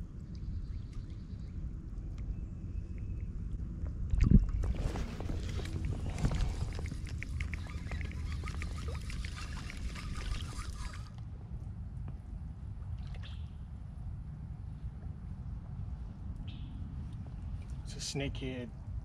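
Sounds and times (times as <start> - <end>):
wind on microphone: 2.7 - 11.6
fishing reel clicking: 6.6 - 11.2.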